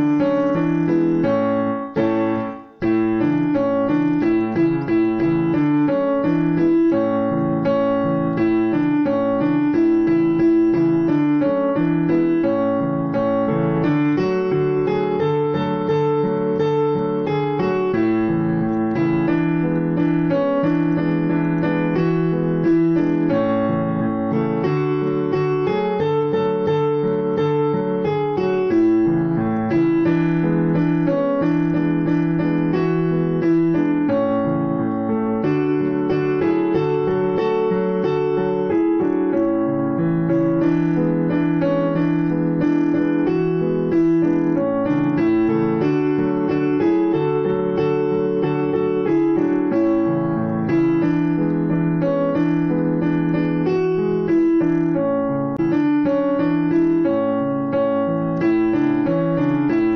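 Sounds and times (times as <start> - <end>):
piano music: 0.0 - 59.9.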